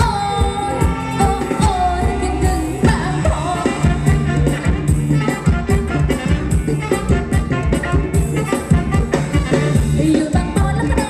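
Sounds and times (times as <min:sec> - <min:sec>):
drum beat and bass: 0:00.0 - 0:11.0.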